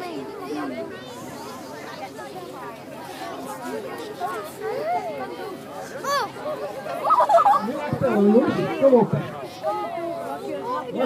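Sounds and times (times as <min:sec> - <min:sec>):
people talking and chattering: 0:00.0 - 0:11.0.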